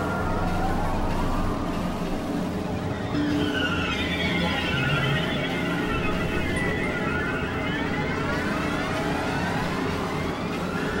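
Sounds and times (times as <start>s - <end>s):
synthesizer drone: 0.0s - 11.0s.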